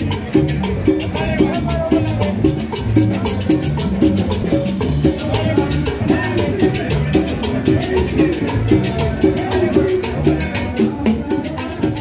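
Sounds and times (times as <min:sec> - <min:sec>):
upbeat latin dance music: 0:00.0 - 0:12.0.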